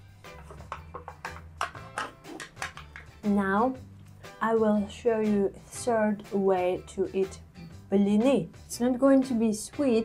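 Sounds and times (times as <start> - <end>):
background music with bass: 0.0 - 10.0.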